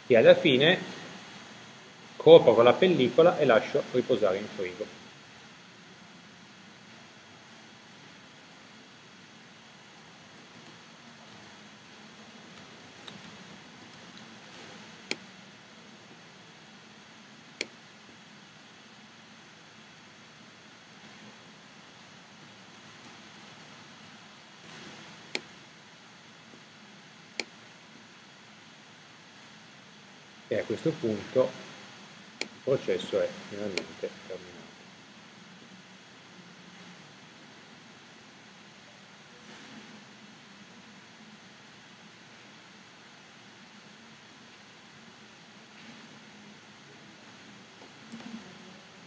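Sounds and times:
faint steady hiss: 0:00.0 - 0:49.0
computer mouse clicking: 0:12.4 - 0:15.3, 0:17.6 - 0:17.8, 0:22.4 - 0:25.5, 0:27.4 - 0:27.6, 0:32.4 - 0:32.6, 0:48.1 - 0:48.4.

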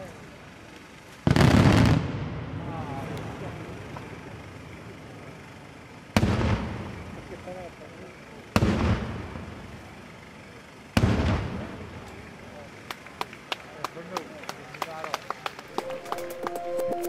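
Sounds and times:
loud firework bangs: 0:01.2 - 0:02.7, 0:06.1 - 0:07.3, 0:08.5 - 0:09.7, 0:11.0 - 0:12.0.

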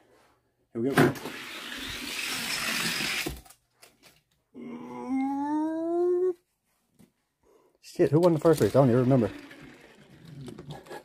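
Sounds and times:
toy cars rolling on track: 0:01.2 - 0:03.5, 0:08.1 - 0:11.0.

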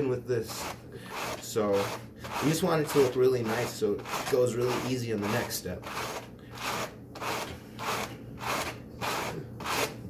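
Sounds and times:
hand carders brushing wool: 0:00.4 - 0:10.0.

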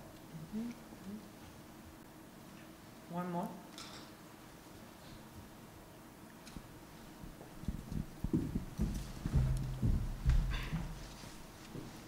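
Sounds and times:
microphone handling thumps: 0:07.2 - 0:11.9.

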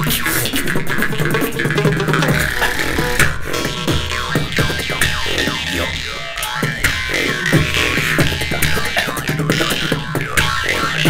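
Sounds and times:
beatboxing: 0:00.0 - 0:11.0
jaw harps droning: 0:00.0 - 0:11.0.

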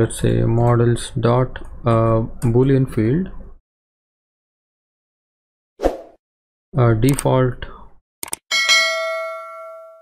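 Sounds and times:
notification bell ding: 0:08.5 - 0:10.0.

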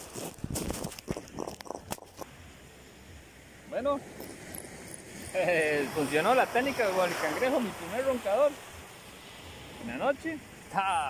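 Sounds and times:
fish scuffing on ground: 0:00.0 - 0:02.3
faint steady hiss: 0:00.0 - 0:11.0.

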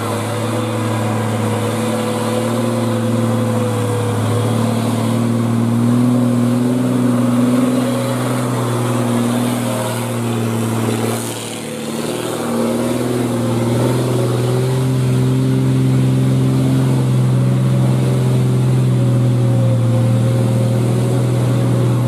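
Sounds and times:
diesel truck engines under load: 0:00.0 - 0:22.0.

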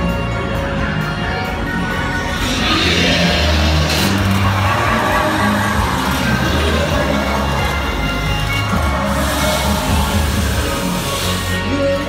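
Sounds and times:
dark ride soundtrack music: 0:00.0 - 0:12.0
low bass notes: 0:00.0 - 0:12.0.

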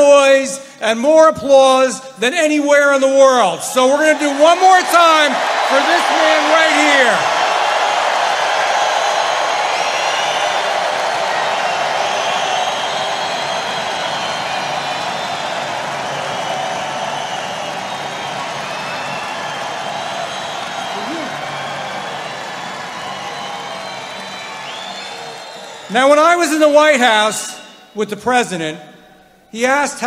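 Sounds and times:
crowd cheering and applauding: 0:03.6 - 0:27.9
whistles: 0:08.4 - 0:29.4.

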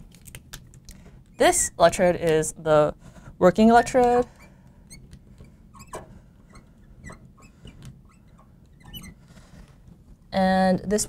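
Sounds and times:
marker squeaking on glass: 0:03.7 - 0:09.5.

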